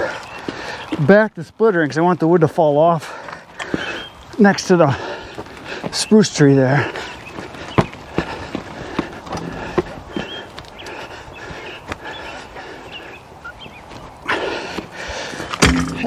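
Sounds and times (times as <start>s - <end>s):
heavy metal clunk: 15.6s - 16.0s.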